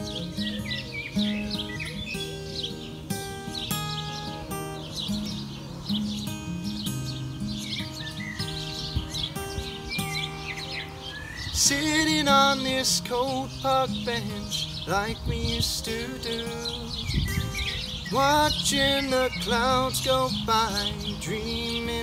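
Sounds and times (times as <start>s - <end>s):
acoustic guitar chords: 0.0s - 22.0s
songbirds chirping: 0.0s - 22.0s.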